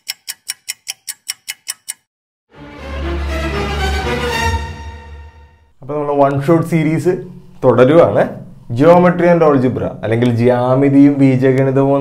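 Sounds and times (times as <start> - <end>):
clock-like ticking: 0.0 - 2.1.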